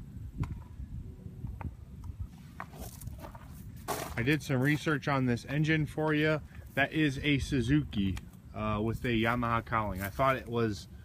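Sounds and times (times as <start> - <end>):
footsteps on gravel and grass: 2.3 - 7.3, 8.8 - 10.7.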